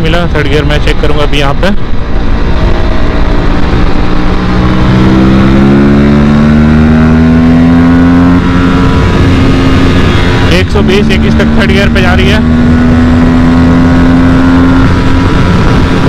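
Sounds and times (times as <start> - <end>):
motorcycle engine accelerating: 0.0 - 16.0.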